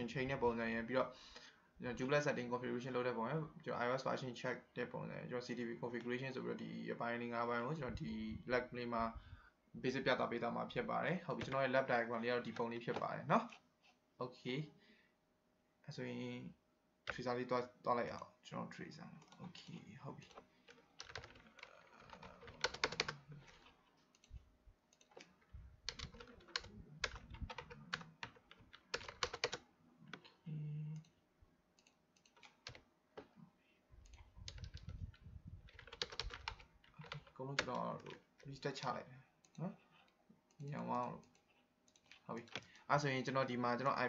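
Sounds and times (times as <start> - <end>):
typing on computer keyboard: 20.2 - 30.3, 31.8 - 32.8, 34.1 - 35.1, 35.7 - 38.2.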